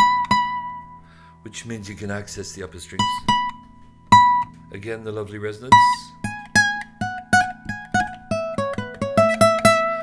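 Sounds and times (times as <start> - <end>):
nylon-string guitar plucked notes: 0.0 - 10.0.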